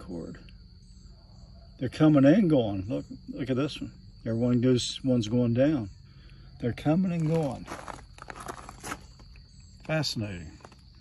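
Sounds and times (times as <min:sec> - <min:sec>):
footsteps crunching on gravel: 0:07.1 - 0:11.0.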